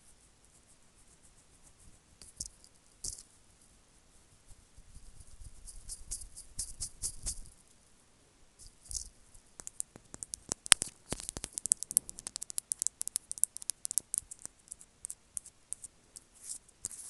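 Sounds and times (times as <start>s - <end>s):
sharp irregular clicks and crackles: 8.8s - 17.0s.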